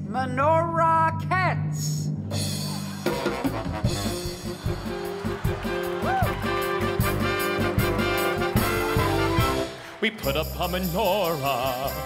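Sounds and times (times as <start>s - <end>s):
drum kit steady beat: 2.3s - 9.8s.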